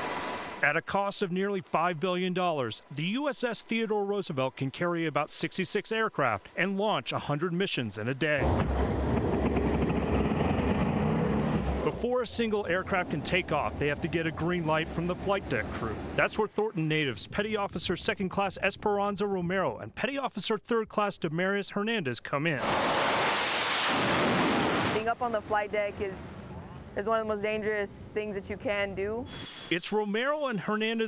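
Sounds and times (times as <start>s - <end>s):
jet engines roaring: 8.4s - 16.5s, 22.6s - 26.3s
catapult steam hissing: 22.6s - 25.0s, 29.3s - 31.0s.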